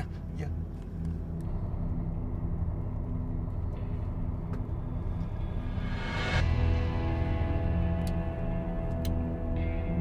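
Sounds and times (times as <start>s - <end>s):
car engine and road noise: 0.0s - 10.0s
faint hum: 0.0s - 10.0s.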